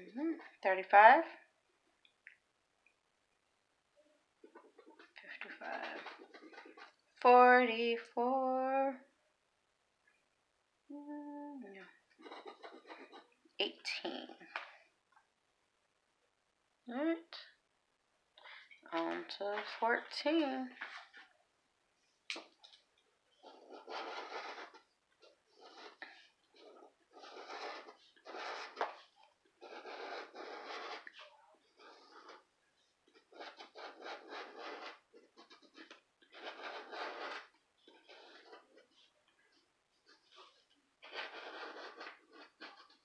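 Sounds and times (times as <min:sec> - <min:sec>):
woman humming: 0:00.0 - 0:00.4, 0:10.9 - 0:11.8
scratching lottery ticket: 0:04.5 - 0:07.0, 0:12.2 - 0:13.3, 0:23.4 - 0:43.0.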